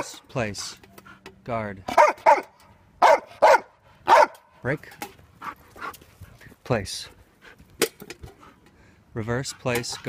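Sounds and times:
dog barking sharply: 1.9 - 4.4.

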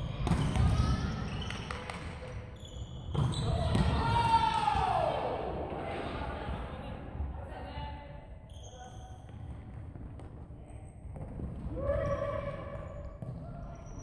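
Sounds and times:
shoe squeaks on wooden court: 8.5 - 9.4.

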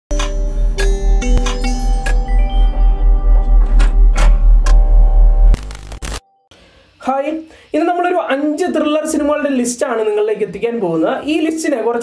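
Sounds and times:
deep bass pulsing: 0.4 - 6.0.

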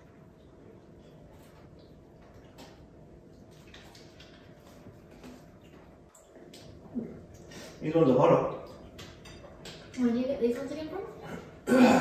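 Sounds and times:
man chewing: 0.0 - 7.8.

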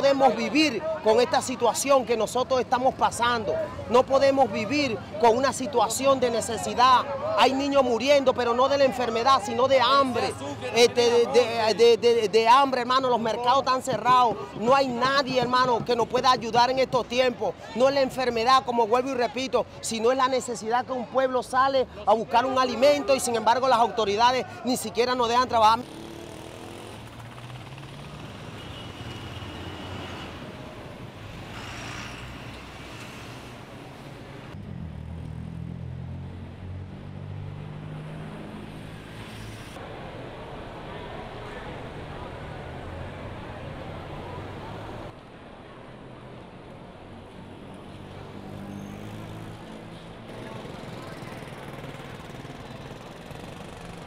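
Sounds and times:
outdoor street noise: 0.0 - 54.0
vehicles passing: 0.0 - 54.0.

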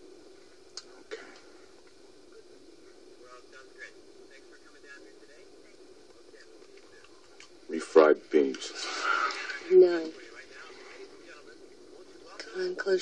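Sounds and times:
faint indistinct small sounds: 0.0 - 13.0
low steady hum: 0.0 - 13.0.

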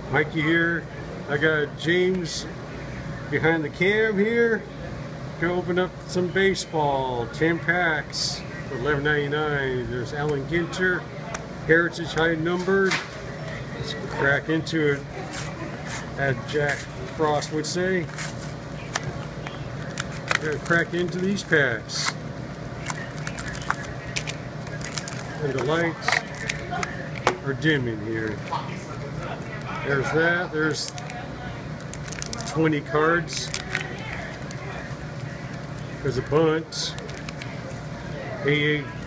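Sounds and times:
foil packs rustling: 19.8 - 22.2, 22.8 - 26.9, 31.8 - 32.7, 33.3 - 34.5.

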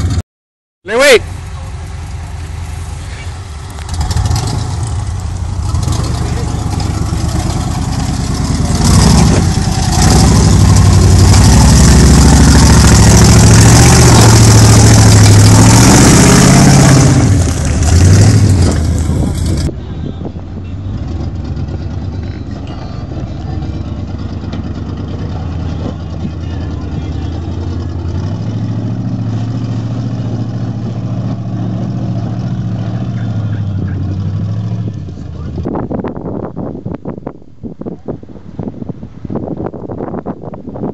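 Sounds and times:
engine running steadily while climbing: 1.3 - 40.9
off-road engine revving hard: 3.8 - 19.7, 20.8 - 35.7.

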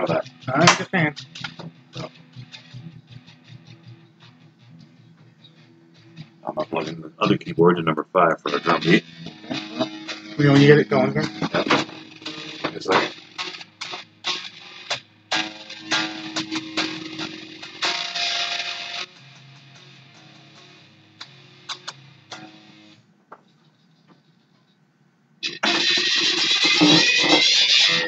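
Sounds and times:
held instrumental tones: 0.0 - 14.4
guitar picking and strumming: 0.0 - 24.4, 25.4 - 28.0.

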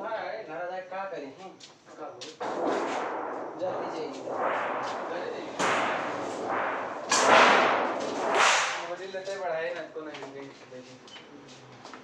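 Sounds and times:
steel sheets rattling: 2.4 - 9.4.

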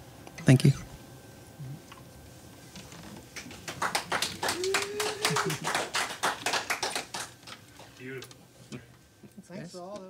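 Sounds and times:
people clapping: 3.3 - 8.0.

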